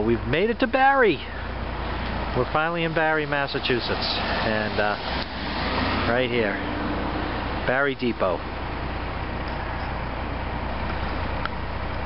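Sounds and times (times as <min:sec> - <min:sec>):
car engine idling: 0:00.2 - 0:12.0.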